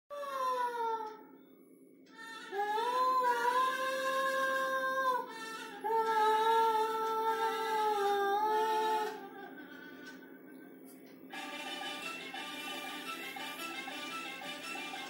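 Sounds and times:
woman singing held notes: 2.1s - 9.3s.

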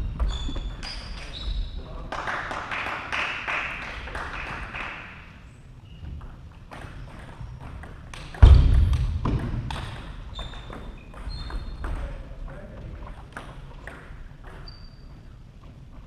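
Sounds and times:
loud thud: 8.4s - 9.7s
high squeaks: 10.3s - 12.0s.

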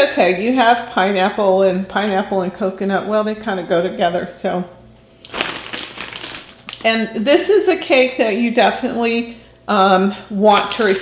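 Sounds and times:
plastic bag crinkling: 5.2s - 7.2s.

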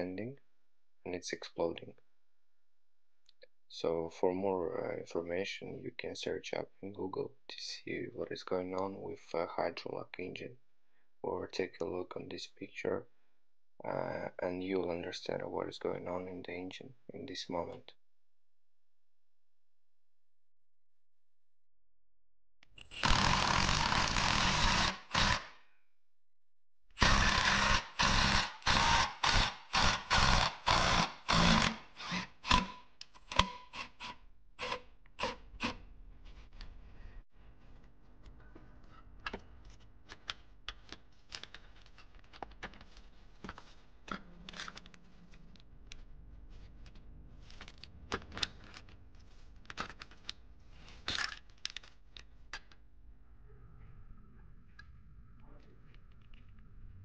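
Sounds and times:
power wrench running in bursts: 22.8s - 25.5s, 27.0s - 35.7s.

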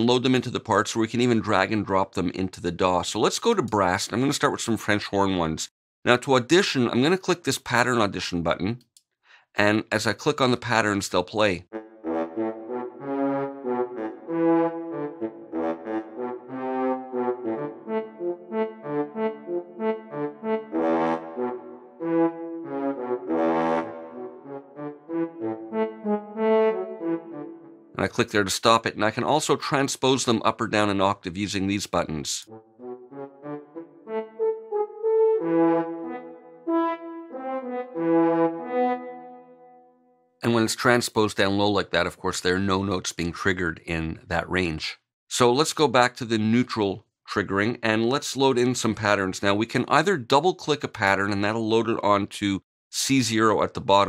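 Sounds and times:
staccato french horn notes: 11.7s - 28.3s, 32.4s - 39.8s.

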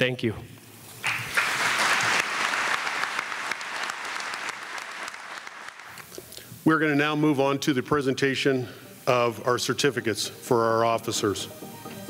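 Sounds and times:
audience applauding: 1.0s - 6.0s.

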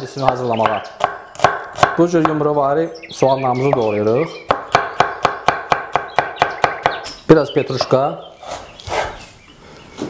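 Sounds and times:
knife chopping on wooden board: 0.2s - 2.4s, 4.5s - 7.1s.

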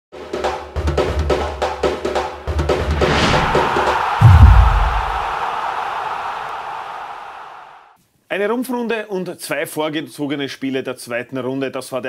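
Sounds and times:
noisy swell: 3.1s - 5.3s
deep bass boom: 4.2s - 5.3s.

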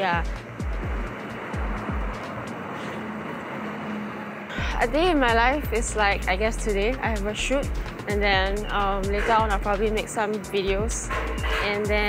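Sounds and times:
city traffic passing: 0.0s - 12.0s.

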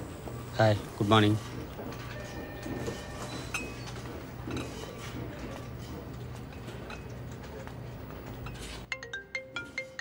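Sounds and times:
marimba-like phone ringtone: 8.9s - 10.0s.

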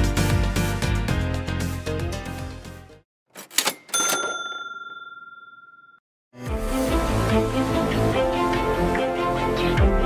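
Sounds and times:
bright bell-like ding: 3.8s - 6.0s.

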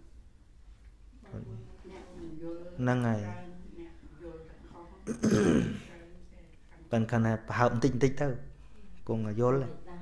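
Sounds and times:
man clearing his throat: 5.1s - 5.9s.

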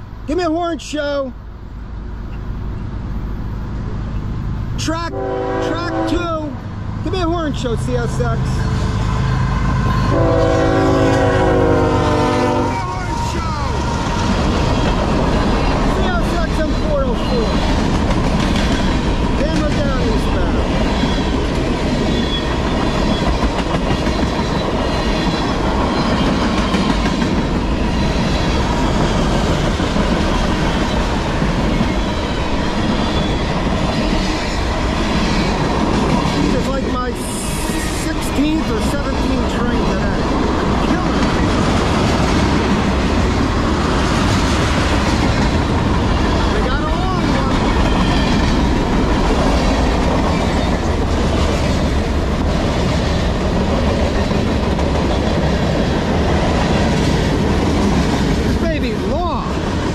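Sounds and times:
train wheels rumbling on rails: 1.8s - 59.9s.

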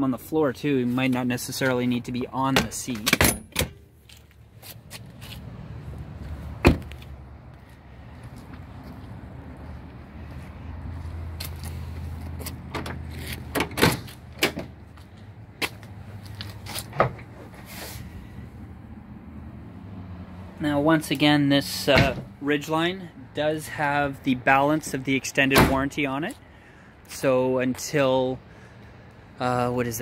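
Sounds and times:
car door slamming: 6.6s - 7.0s, 21.9s - 22.3s, 25.6s - 25.9s.

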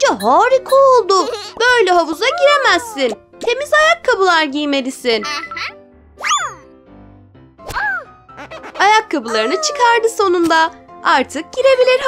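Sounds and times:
soft background music: 0.0s - 12.0s
voice-like cry: 9.3s - 9.9s.

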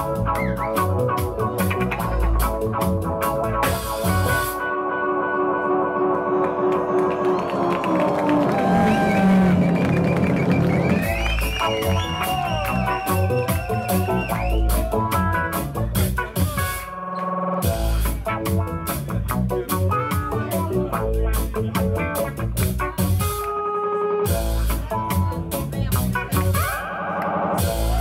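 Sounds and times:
drum kit: 0.0s - 4.7s, 6.5s - 28.0s.

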